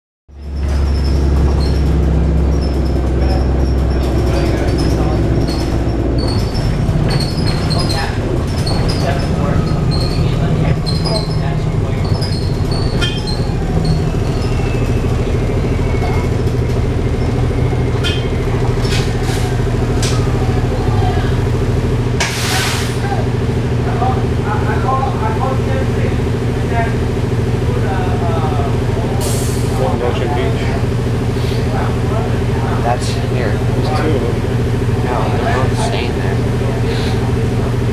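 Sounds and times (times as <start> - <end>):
bus drivetrain hum: 0.3 - 37.9.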